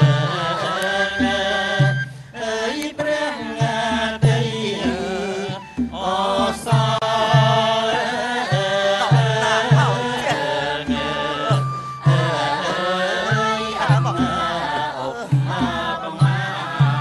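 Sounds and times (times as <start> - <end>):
accompanying music: 0.0 - 17.0
low drum beats: 0.0 - 17.0
person chanting melodically: 0.0 - 17.0.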